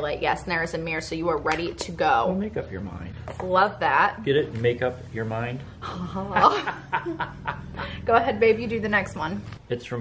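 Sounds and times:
woman and man laughing: 0:05.8 - 0:08.0.

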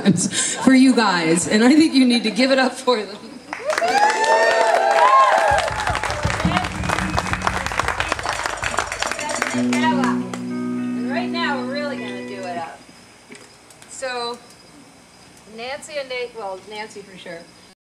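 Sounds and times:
audience clapping and whooping: 0:03.5 - 0:10.7
voices: 0:06.1 - 0:12.9
held instrument chord: 0:06.4 - 0:12.8.

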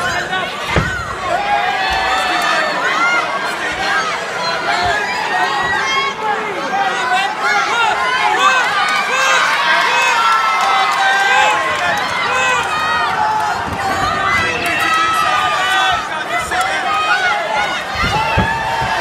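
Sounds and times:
crowd shouting and yelling: 0:00.0 - 0:19.0.

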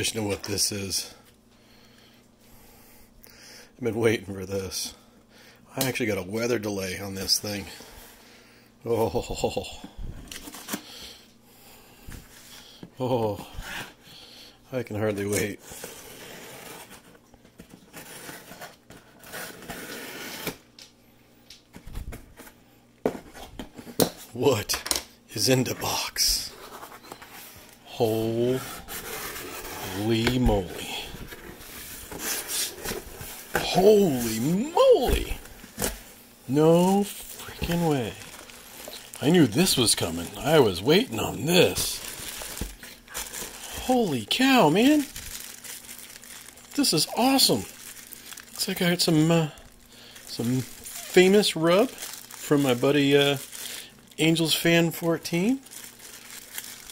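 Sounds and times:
plastic bag crinkling: 0:25.9 - 0:56.9.

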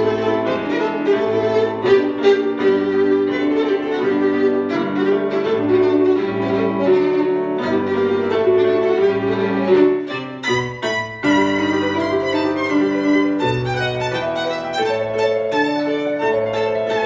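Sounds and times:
digital piano accompaniment: 0:00.0 - 0:17.0
violin melody: 0:00.0 - 0:17.0.

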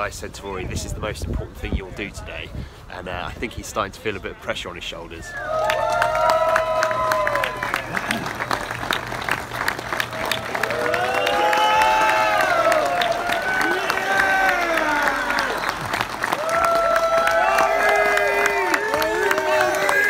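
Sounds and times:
crowd cheering and clapping: 0:05.3 - 0:20.0.

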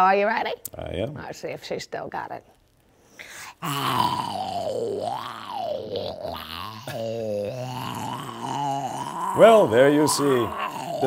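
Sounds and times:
person groaning: 0:03.4 - 0:11.0.

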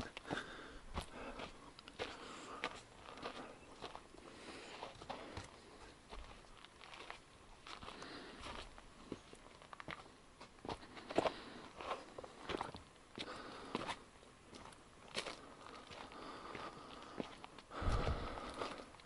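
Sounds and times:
footsteps on dry dirt trail: 0:00.0 - 0:19.0.

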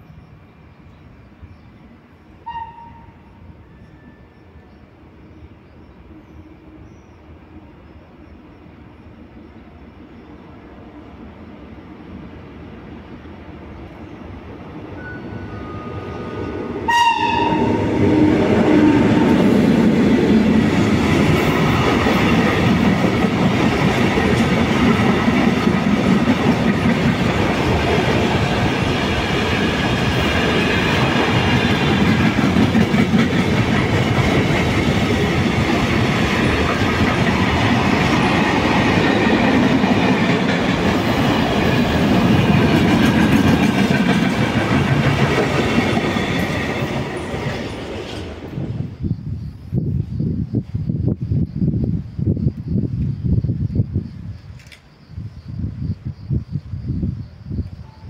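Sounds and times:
electric locomotive passing: 0:00.0 - 0:54.0
train wheels clacking on rail joints: 0:20.2 - 0:48.3.

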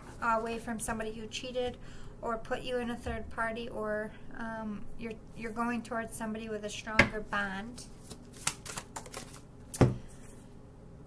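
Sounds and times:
card slap: 0:08.4 - 0:10.0.

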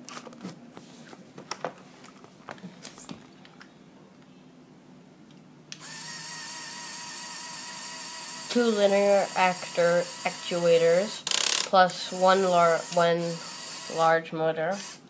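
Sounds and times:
electric motor whining: 0:05.8 - 0:11.0, 0:12.0 - 0:14.1.

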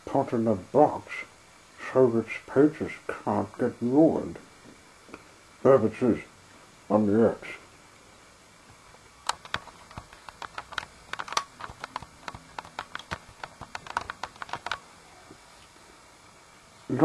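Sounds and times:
toy engines clicking and tapping: 0:09.3 - 0:14.8.

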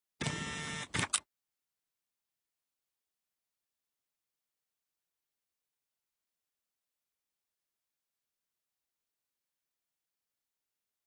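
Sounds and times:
short mechanical buzz: 0:00.2 - 0:01.2
sharp clicks: 0:00.2 - 0:01.3.

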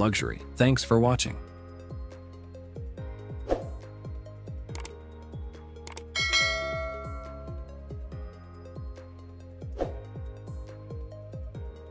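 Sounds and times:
bell chime: 0:06.2 - 0:07.7.

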